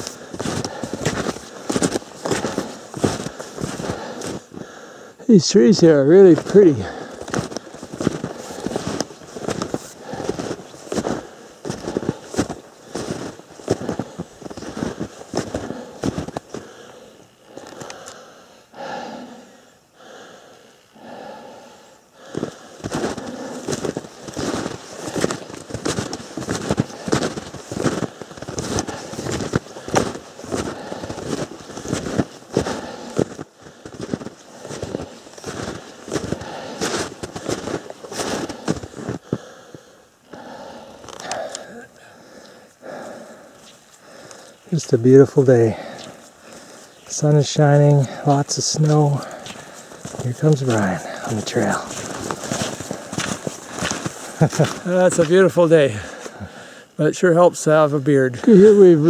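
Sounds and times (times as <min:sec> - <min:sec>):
snowshoe footsteps crunching in snow: 0:00.0 - 0:04.8, 0:05.4 - 0:17.9, 0:22.2 - 0:39.5, 0:41.0 - 0:56.6.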